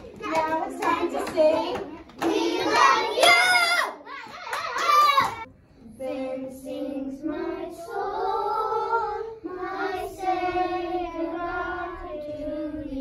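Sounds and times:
children singing in unison: 5.9 - 13.0.

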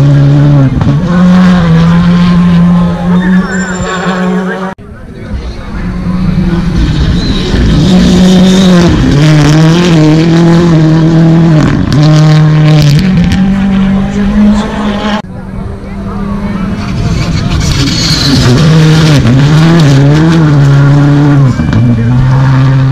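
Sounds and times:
rally car engines at high revs: 0.0 - 22.9.

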